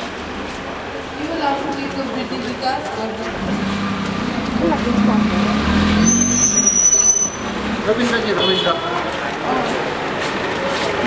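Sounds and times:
vehicle engine running: 0:03.1 - 0:08.6
thin high squeal: 0:06.0 - 0:07.5.

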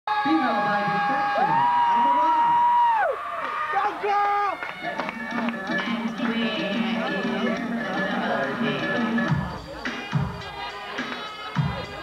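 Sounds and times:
audience whooping: 0:00.1 - 0:05.9.

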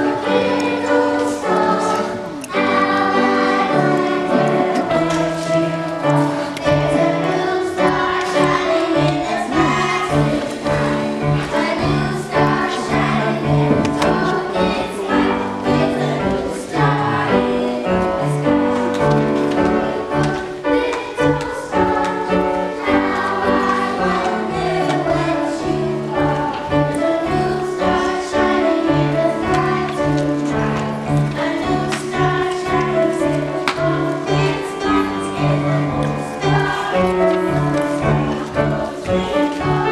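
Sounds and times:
grand piano: 0:00.0 - 0:39.9
instrumental accompaniment: 0:00.0 - 0:39.9
youth choir singing: 0:00.0 - 0:39.9.

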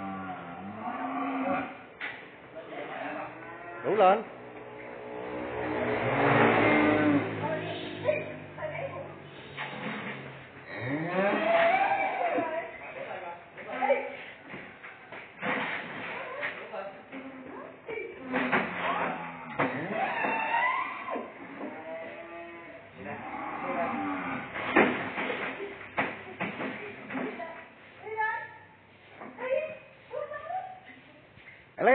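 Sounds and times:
vehicle engine running: 0:04.3 - 0:10.6.

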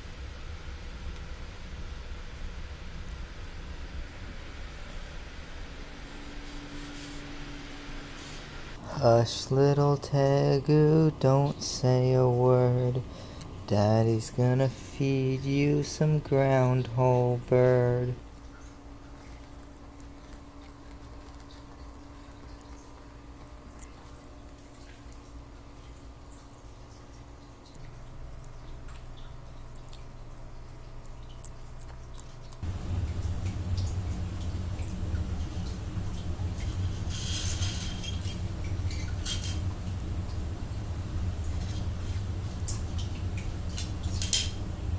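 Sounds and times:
faint hum: 0:00.0 - 0:44.9
room noise hiss: 0:00.0 - 0:44.9
man singing: 0:08.8 - 0:13.1, 0:13.7 - 0:18.2.

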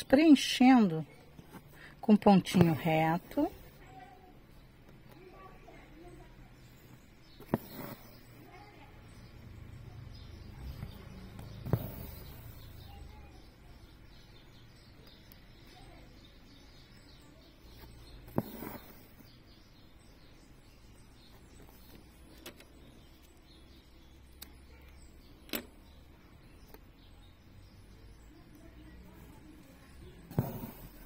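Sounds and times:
needle punching through canvas: 0:07.4 - 0:08.3, 0:10.6 - 0:12.7, 0:18.2 - 0:19.2, 0:30.2 - 0:31.0
thread drawn through fabric: 0:07.4 - 0:08.3, 0:11.4 - 0:12.7, 0:17.8 - 0:19.2, 0:30.3 - 0:31.0.

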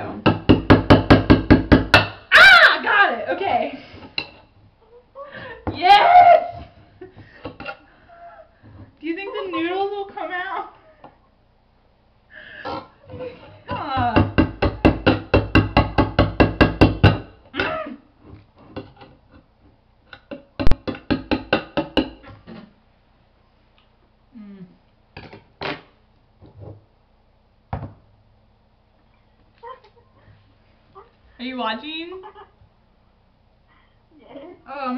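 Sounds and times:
woman laughing: 0:04.8 - 0:07.2, 0:08.0 - 0:10.0, 0:29.6 - 0:30.2, 0:32.1 - 0:32.6.

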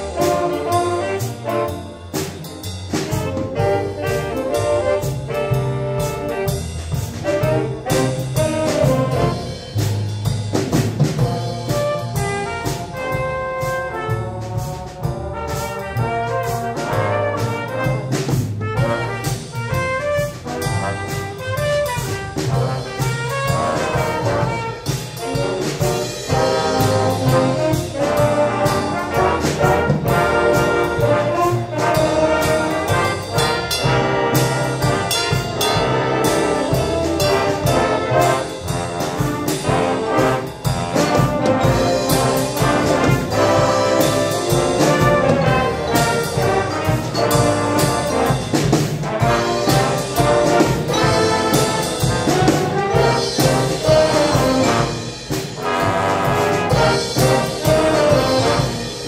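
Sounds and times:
drum kit beat: 0:00.0 - 0:59.0
jazz band playing swing: 0:00.0 - 0:59.0.

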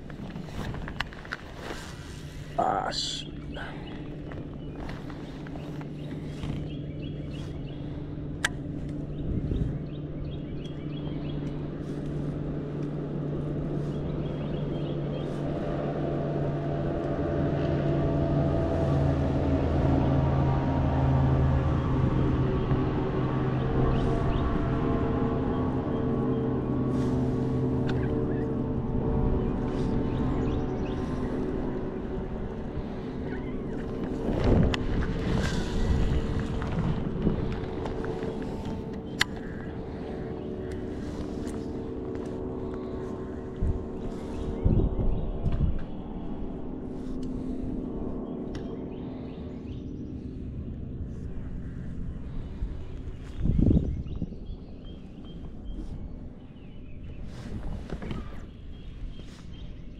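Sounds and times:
boat motor humming: 0:00.0 - 0:59.9.

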